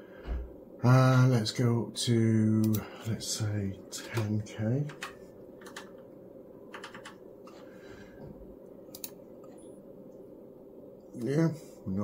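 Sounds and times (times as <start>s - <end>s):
faint low hum: 0.0s - 12.0s
keyboard and mouse clicks: 4.9s - 6.0s, 6.7s - 7.2s, 8.9s - 9.6s.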